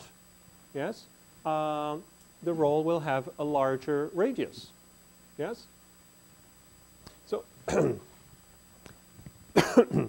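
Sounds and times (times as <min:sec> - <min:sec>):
man coughing: 0:07.7 - 0:08.2, 0:09.6 - 0:10.0.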